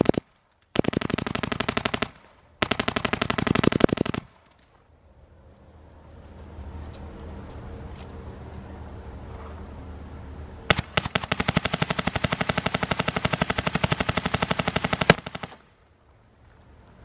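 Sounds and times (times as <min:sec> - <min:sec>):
paintball marker firing rapidly: 0:00.0 - 0:04.4, 0:10.7 - 0:15.7.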